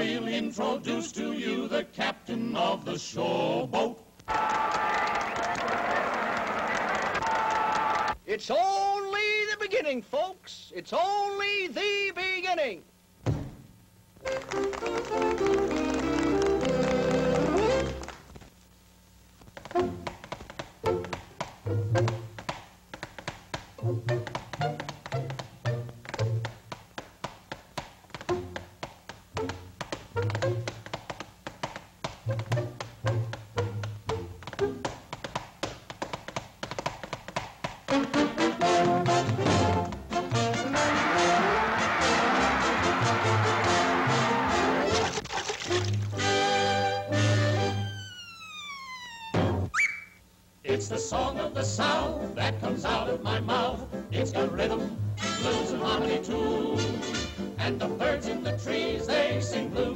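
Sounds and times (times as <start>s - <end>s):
tap dancing taps: 14.3s - 18.5s, 19.4s - 40.7s
whistle tone sliding down: 47.6s - 50.2s.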